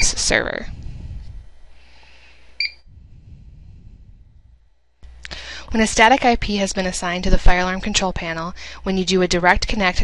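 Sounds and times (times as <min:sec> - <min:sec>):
faint low hum: 0:00.0 - 0:10.0
short keypad beep: 0:02.6 - 0:02.8.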